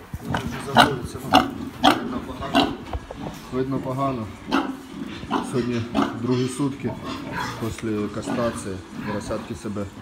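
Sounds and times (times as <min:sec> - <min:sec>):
pigs grunting: 0:00.2 - 0:10.0.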